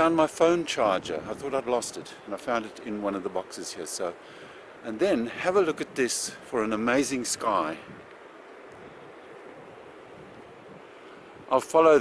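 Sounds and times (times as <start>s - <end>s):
faint rushing noise: 0.0s - 12.0s.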